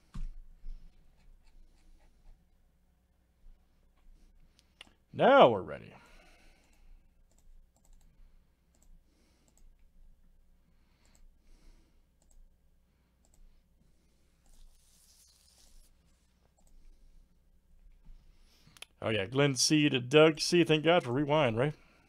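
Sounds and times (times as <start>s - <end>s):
low room hum: 0.0s - 22.0s
faint computer mouse clicks: 6.6s - 8.1s, 8.7s - 9.8s, 12.2s - 12.4s, 13.2s - 13.5s.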